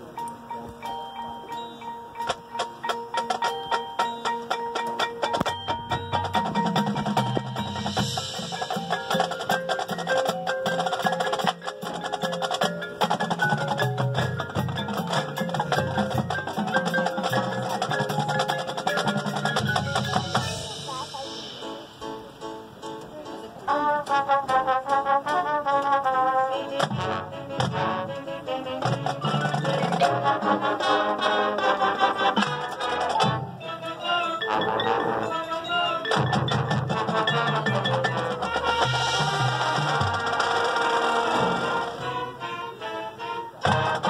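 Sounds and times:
marching band playing: 0.0s - 22.8s, 23.5s - 44.0s
mallet percussion: 0.0s - 42.8s, 43.6s - 44.0s
drums: 0.0s - 44.0s.

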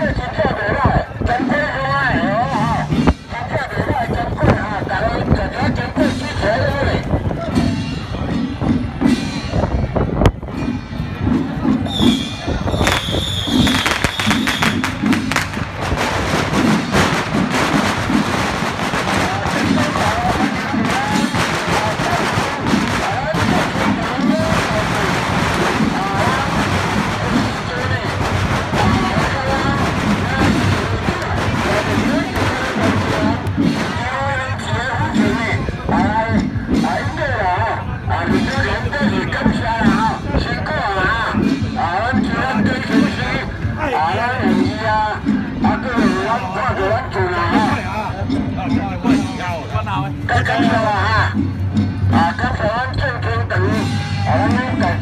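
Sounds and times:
music playing: 0.0s - 55.0s
people talking: 0.0s - 55.0s
high whistle-like tone: 11.8s - 14.8s.

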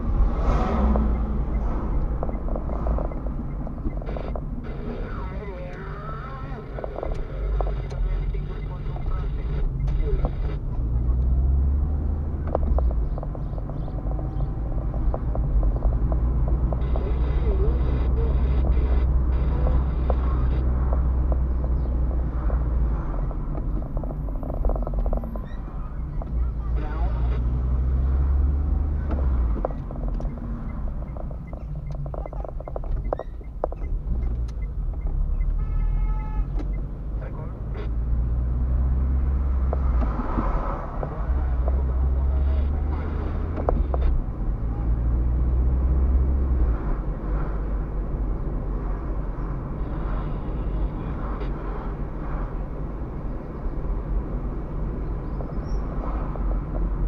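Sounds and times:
car engine and road drone: 0.0s - 57.0s.

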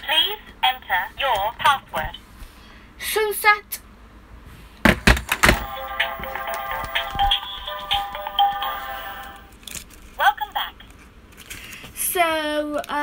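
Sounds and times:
toy clunks: 4.8s - 7.0s.

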